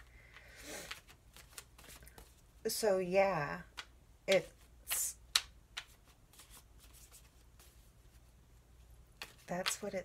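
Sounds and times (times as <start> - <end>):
cards being shuffled: 0.0 - 2.5, 3.6 - 8.3, 9.1 - 10.0.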